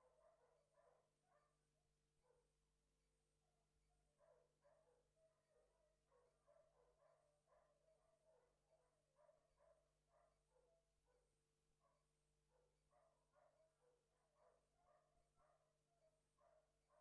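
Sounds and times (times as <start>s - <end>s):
faint dog barking: 0.0s - 2.5s, 4.1s - 17.0s.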